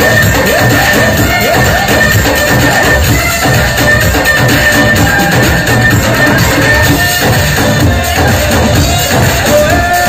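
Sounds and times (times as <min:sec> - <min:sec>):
drums and hand percussion: 0:00.0 - 0:10.0
upbeat band music: 0:00.0 - 0:10.0.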